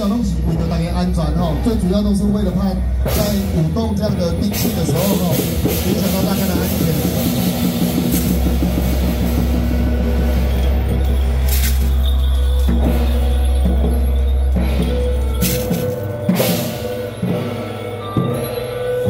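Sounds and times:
slow even drum beat: 2.9s - 18.8s
fast drum roll: 4.5s - 12.1s.

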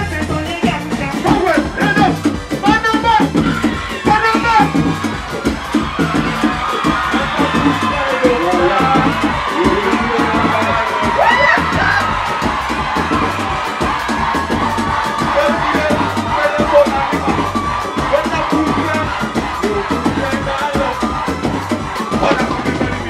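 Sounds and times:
crowd cheering and shouting: 0.0s - 23.0s
live band playing dance music: 0.0s - 23.0s.

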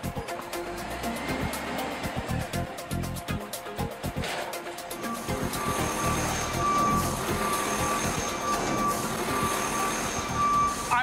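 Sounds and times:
background music: 0.0s - 11.0s
truck engine running: 0.0s - 11.0s
reversing alarm beeping: 4.9s - 11.0s.

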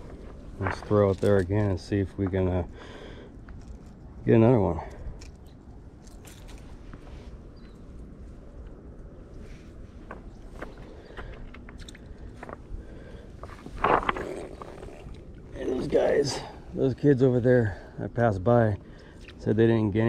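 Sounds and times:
handling noises: 0.0s - 2.4s.

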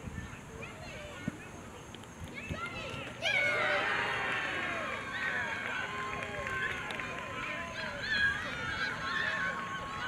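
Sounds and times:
players and spectators shouting: 2.8s - 10.0s.

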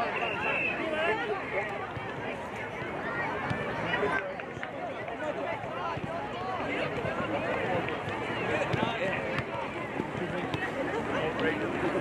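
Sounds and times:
players and spectators shouting: 0.0s - 4.2s.

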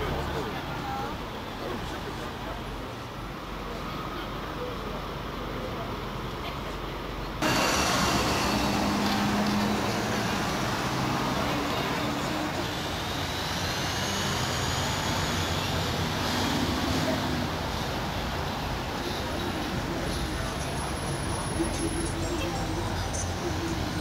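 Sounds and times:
city street traffic: 0.0s - 24.0s.

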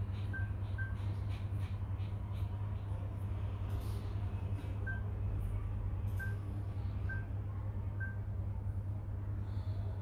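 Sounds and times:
steady low hum: 0.0s - 10.0s
smartphone touch beeps: 0.3s - 1.1s, 4.8s - 5.1s, 6.2s - 6.4s, 7.1s - 7.3s, 8.0s - 8.2s.

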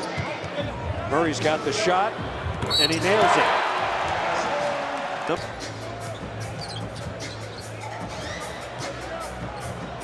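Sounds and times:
low arena music: 0.2s - 10.0s
arena crowd cheering: 2.8s - 5.4s.

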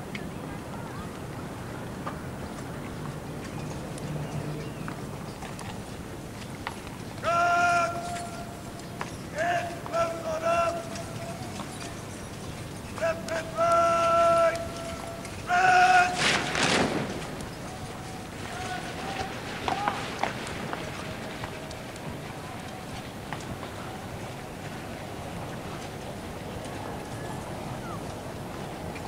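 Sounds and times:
horse hooves clattering: 1.1s - 29.0s
man shouting commands: 7.2s - 8.6s, 9.3s - 11.6s, 12.9s - 16.6s, 17.7s - 20.2s
soldiers drill crash: 15.5s - 21.2s.

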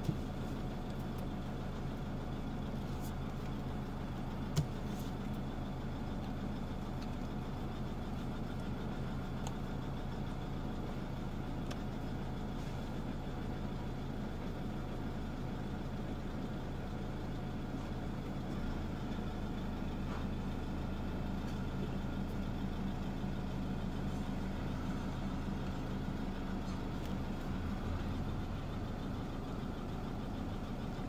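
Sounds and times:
van engine idling: 0.0s - 31.0s.

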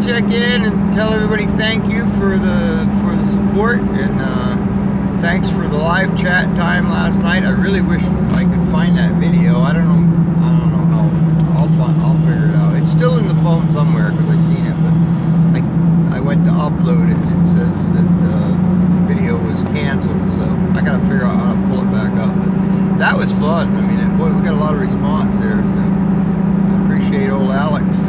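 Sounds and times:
man talking: 0.0s - 4.6s, 5.2s - 26.0s, 26.9s - 28.0s
truck engine and road noise: 0.0s - 28.0s.

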